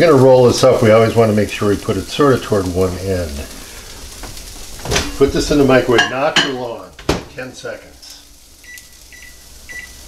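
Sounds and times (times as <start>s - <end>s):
microwave keypad beeping: 8.6s - 10.0s.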